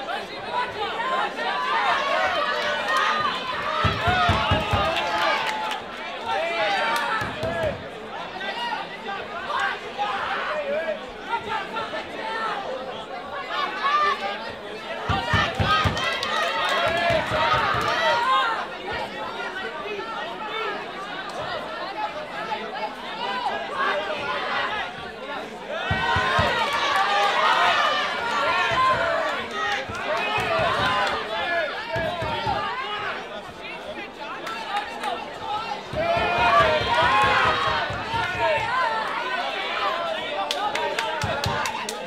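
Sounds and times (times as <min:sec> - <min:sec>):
spectators talking and calling out: 0:00.0 - 0:42.0.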